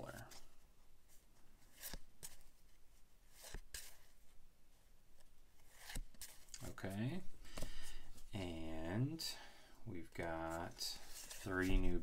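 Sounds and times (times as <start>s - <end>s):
cards scraping and tapping: 1.7s - 2.5s, 3.3s - 4.1s.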